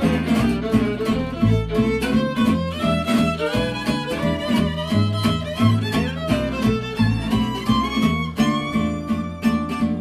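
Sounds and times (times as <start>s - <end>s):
fiddle melody: 0.0s - 10.0s
guitar strumming rhythm chords: 0.0s - 10.0s.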